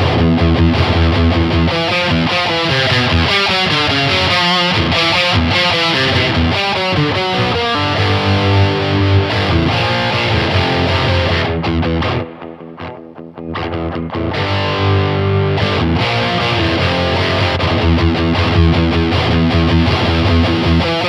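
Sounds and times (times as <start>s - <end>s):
distorted electric guitar: 0.0s - 21.0s.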